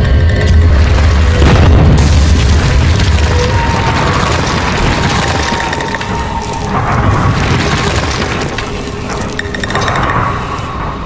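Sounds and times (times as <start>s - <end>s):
music: 0.0s - 11.0s
deep rumbling boom: 0.4s - 8.8s
breaking stone crash: 0.5s - 9.8s.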